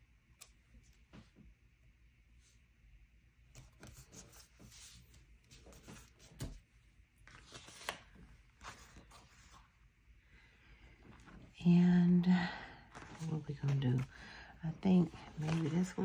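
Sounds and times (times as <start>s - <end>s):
paper rustling: 3.6s - 6.6s, 7.2s - 9.7s, 12.5s - 16.0s.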